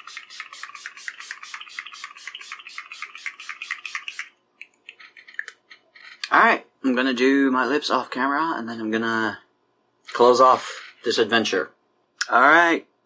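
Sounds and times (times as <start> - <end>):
spray bottle hissing spurts: 0.0 - 5.5.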